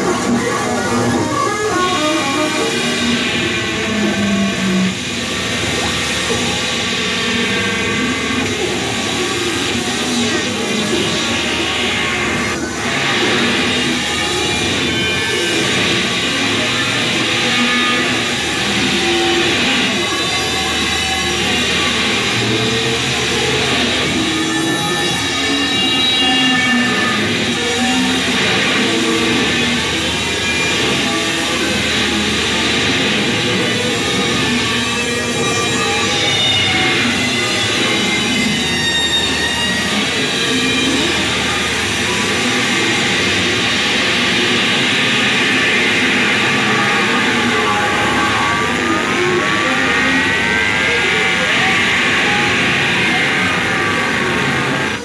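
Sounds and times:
distorted electric guitar noise: 0.0 - 55.0.

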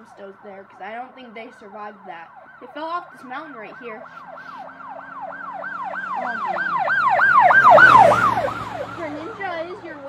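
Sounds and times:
siren in a fast yelp: 0.0 - 10.0.

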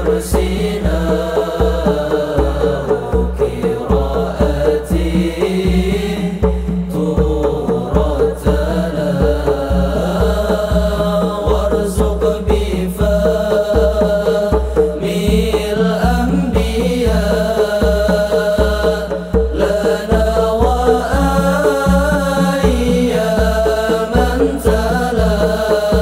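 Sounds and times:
deep drum beats: 0.0 - 26.0
frame drums: 0.0 - 26.0
men singing a devotional chant: 0.0 - 26.0.

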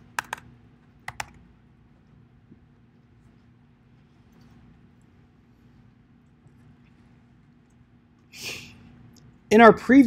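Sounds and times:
keyboard key clicks: 0.1 - 0.5, 1.1 - 1.4.

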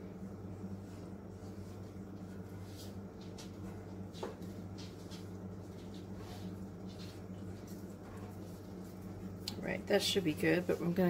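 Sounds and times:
brush swishing on skillet: 0.5 - 3.8.

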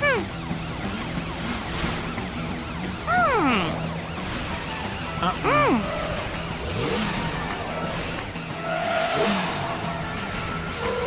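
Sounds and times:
cartoon police siren wailing: 2.0 - 6.3.

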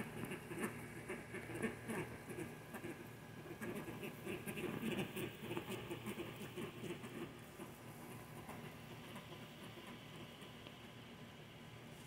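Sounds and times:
patter of birds feeding: 0.0 - 12.0.

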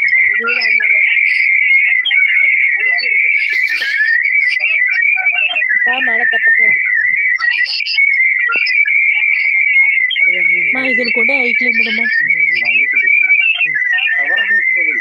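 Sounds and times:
faint voices: 0.0 - 15.0
high whistle-like tone: 3.3 - 5.6.

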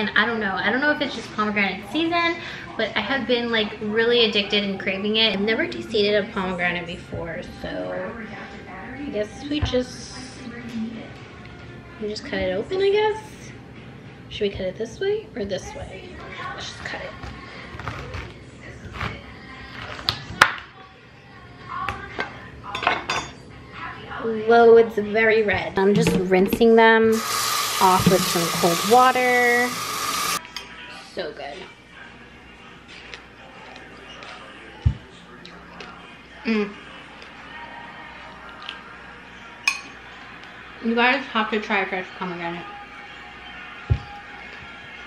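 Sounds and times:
knife cutting pomegranate: 16.8 - 20.6
metal spoon clinking glass bowl: 39.6 - 40.0.

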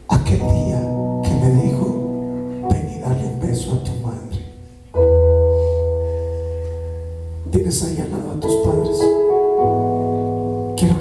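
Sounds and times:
sustained keyboard chord: 0.1 - 11.0.

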